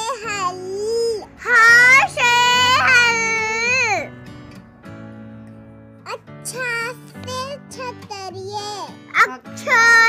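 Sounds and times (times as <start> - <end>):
child's high voice: 0.0 - 4.1, 6.1 - 10.0
background music: 0.0 - 10.0.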